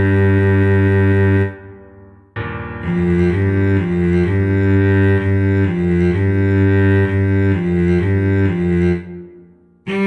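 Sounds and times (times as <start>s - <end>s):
cello holding low note: 0.0s - 10.0s.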